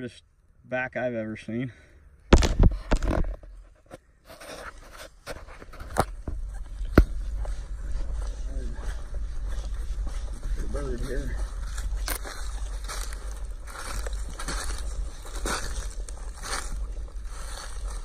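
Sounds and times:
footsteps through grass and leaves: 0:03.4 - 0:18.0
low handling noise rumble: 0:06.1 - 0:18.0.

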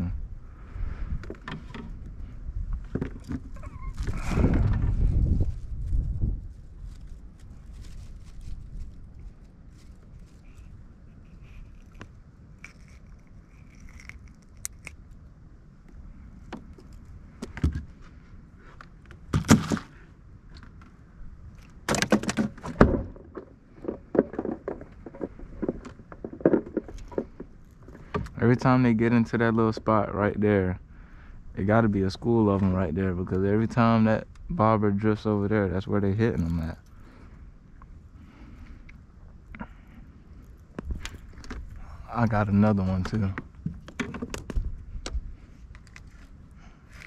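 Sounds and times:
fishing gear knocking and rattling: 0:21.8 - 0:28.4, 0:40.7 - 0:42.0, 0:43.0 - 0:45.2.

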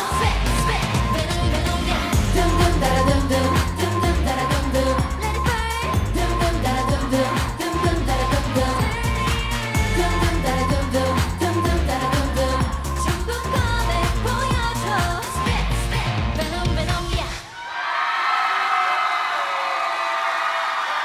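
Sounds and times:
pop dance track with female vocals: 0:00.0 - 0:17.5.

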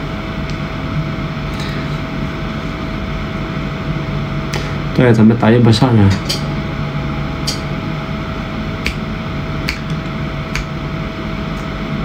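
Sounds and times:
machinery hum and hiss: 0:00.0 - 0:12.0.

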